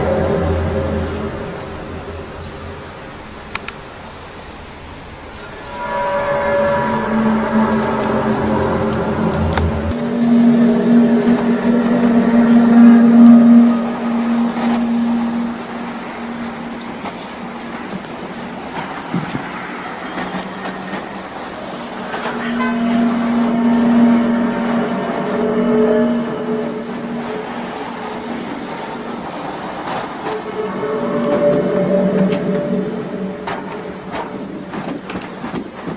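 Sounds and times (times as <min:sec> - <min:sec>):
loud trumpet-like drone: 0:00.0 - 0:03.2, 0:05.4 - 0:35.0.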